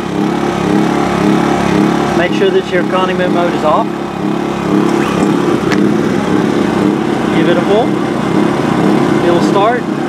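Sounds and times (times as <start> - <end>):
generator running: 0.0 - 10.0.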